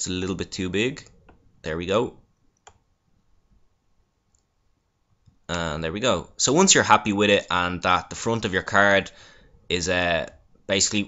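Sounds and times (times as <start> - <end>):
computer mouse click: 2.6 - 2.8.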